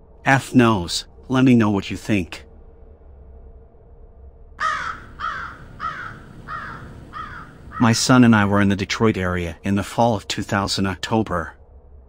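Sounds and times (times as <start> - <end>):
crow cawing: 4.6 - 8.0.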